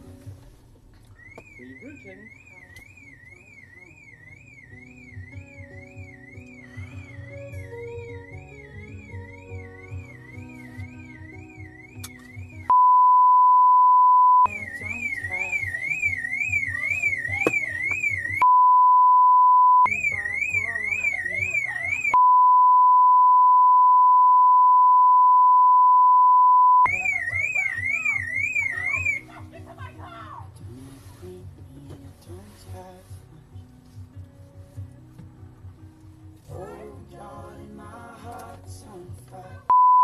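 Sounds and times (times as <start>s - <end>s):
censor bleep tone: 1.3s - 29.2s, 39.7s - 40.0s
voices: 14.5s - 18.4s, 19.9s - 22.2s, 26.9s - 30.6s.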